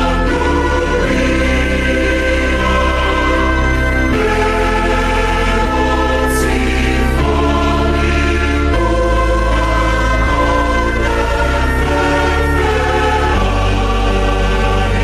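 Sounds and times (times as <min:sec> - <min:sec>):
choir singing a hymn: 0:00.0 - 0:15.0.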